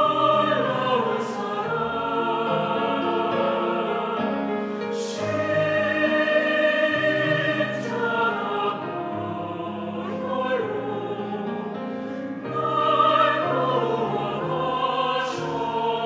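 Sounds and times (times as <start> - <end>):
mixed choir singing in parts: 0.0 - 16.0
piano accompaniment: 0.0 - 16.0.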